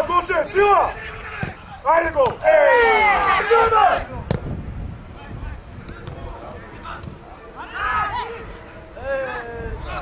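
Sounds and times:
loud shout: 0.0s - 4.1s, 7.6s - 10.0s
faint shouts of players: 0.0s - 4.3s, 7.3s - 10.0s.

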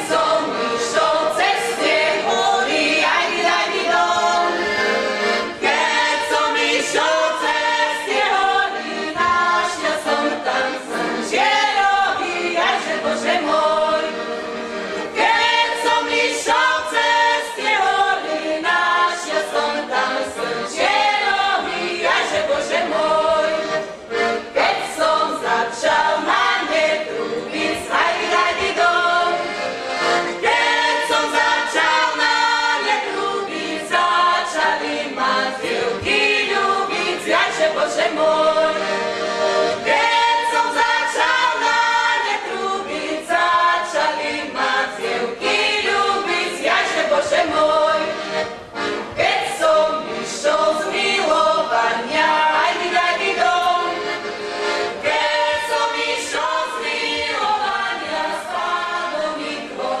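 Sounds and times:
women singing folk song: 0.0s - 60.0s.

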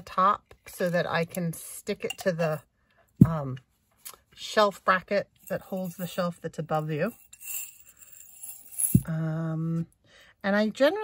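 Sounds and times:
metal eyelets rattling in glass jar: 5.3s - 9.1s.

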